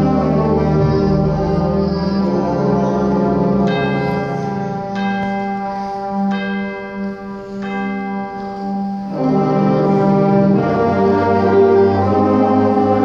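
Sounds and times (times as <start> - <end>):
concert band held chord: 0.0 - 13.0
tubular chimes ringing: 0.0 - 13.0.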